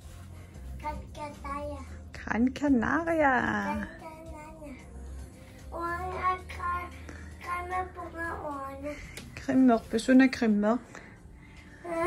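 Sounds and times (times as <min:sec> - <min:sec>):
child singing: 0:05.7 - 0:08.9.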